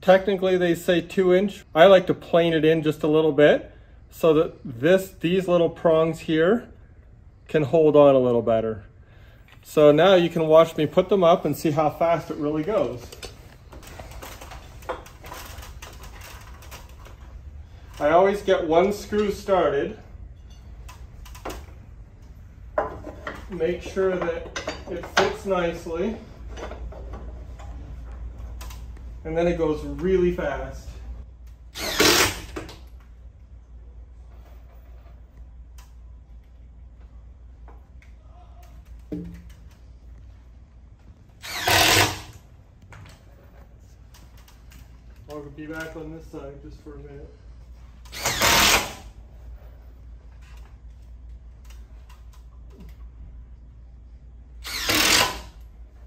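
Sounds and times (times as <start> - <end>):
steady low hum: 0.0 - 56.0
cordless driver driving screws: 54.6 - 55.5.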